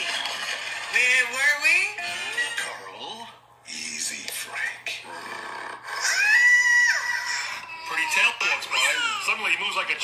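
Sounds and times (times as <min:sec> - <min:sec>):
person shrieking: 0:06.0 - 0:09.0.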